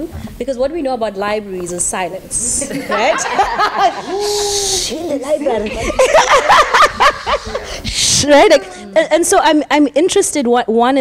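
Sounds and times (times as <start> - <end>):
women laughing: 2.6 - 9.0.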